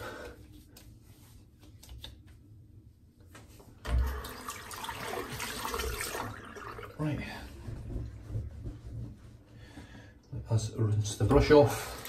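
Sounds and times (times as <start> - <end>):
tap water running into sink: 3.8 - 7.0.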